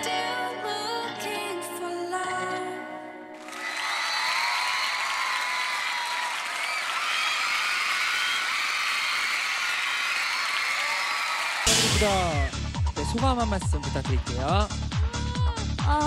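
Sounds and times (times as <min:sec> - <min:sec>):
studio audience cheering and applauding: 0:03.3 - 0:15.9
high-pitched screams: 0:03.4 - 0:12.6
song: 0:11.7 - 0:14.7.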